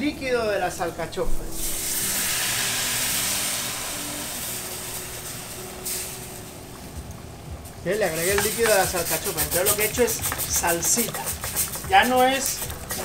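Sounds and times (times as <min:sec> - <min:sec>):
liquid hissing in hot pan: 0:01.5 - 0:07.0, 0:07.6 - 0:13.0.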